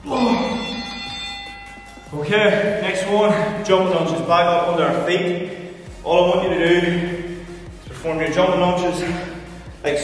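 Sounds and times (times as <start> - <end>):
bell-like electronic timer chime: 0.2 - 3.4.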